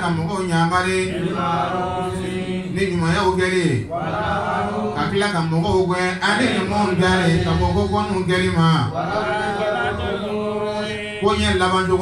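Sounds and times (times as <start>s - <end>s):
man chanting recitation through microphone: 0.0s - 4.1s, 4.7s - 12.0s.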